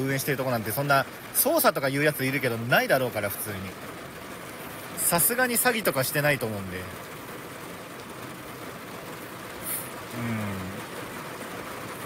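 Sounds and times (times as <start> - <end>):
steady rain: 0.0 - 12.0
person humming: 10.1 - 10.8.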